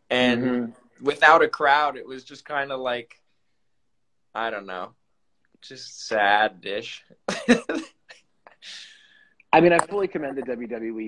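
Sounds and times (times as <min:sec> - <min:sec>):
man laughing: 0:07.3 - 0:08.8.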